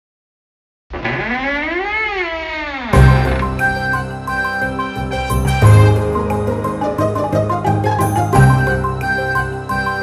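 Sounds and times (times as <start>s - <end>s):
theme music: 3.0s - 10.0s.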